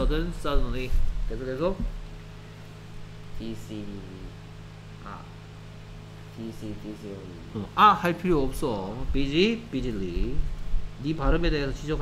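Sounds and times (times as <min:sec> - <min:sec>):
low hum and hiss: 0:00.0 - 0:12.0
person saying ah: 0:06.4 - 0:07.9.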